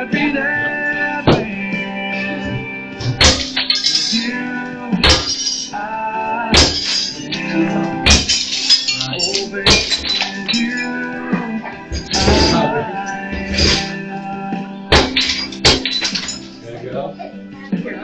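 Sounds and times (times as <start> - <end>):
song with singing: 0.0 - 18.0
bat smashing dishes: 3.0 - 4.3, 5.0 - 5.8, 6.5 - 11.0, 11.9 - 12.8, 13.4 - 14.0, 14.9 - 16.6.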